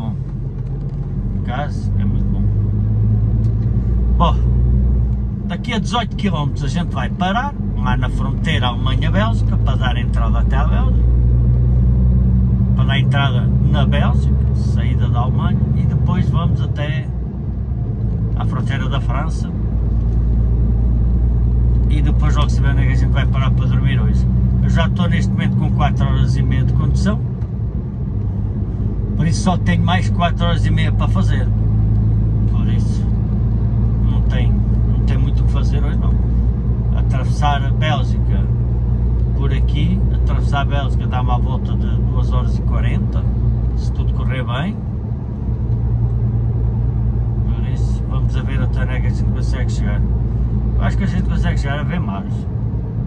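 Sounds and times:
road noise: 0:00.0 - 0:53.0
truck diesel engine droning: 0:00.0 - 0:53.0.

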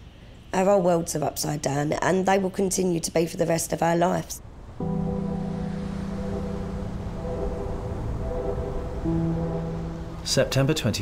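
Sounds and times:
low droning music notes: 0:04.4 - 0:11.0.

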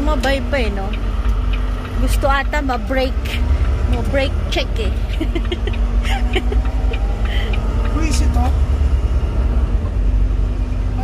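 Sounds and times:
truck engine low rumble: 0:00.0 - 0:11.0.

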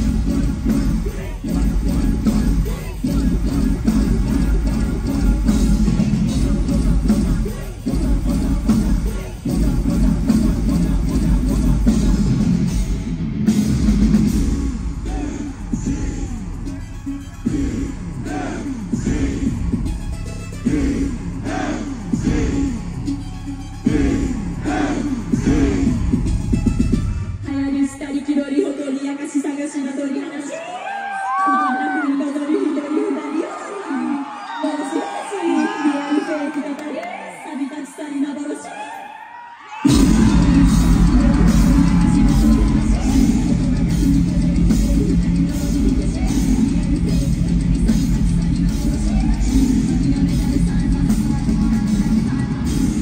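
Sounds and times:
live metal music: 0:00.0 - 0:27.5, 0:39.9 - 0:53.0
drums beating: 0:00.0 - 0:27.8, 0:39.9 - 0:53.0.

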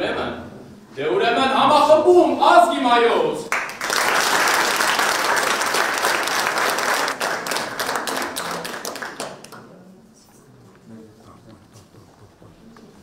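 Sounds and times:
audience applauding: 0:03.5 - 0:09.7.

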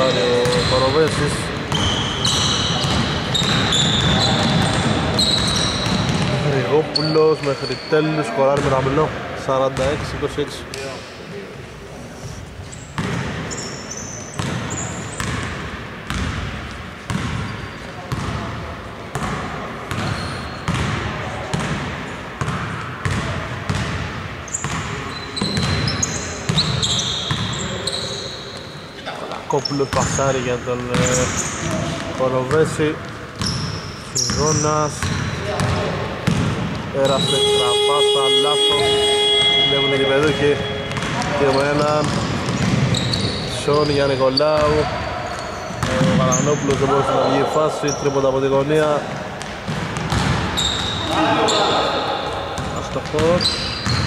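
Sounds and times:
sneakers squeaking: 0:00.0 - 0:09.0, 0:12.1 - 0:54.0
basketball bouncing on wooden floor: 0:02.8 - 0:06.4, 0:40.3 - 0:43.2, 0:49.4 - 0:51.0
held multi-pitch tone: 0:37.0 - 0:41.6
players calling out: 0:37.0 - 0:48.8, 0:50.6 - 0:54.0.

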